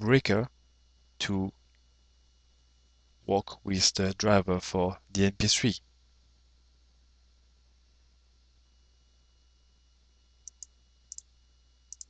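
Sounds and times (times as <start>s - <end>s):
faint low hum: 0.0s - 12.0s
computer mouse clicks: 10.4s - 11.3s.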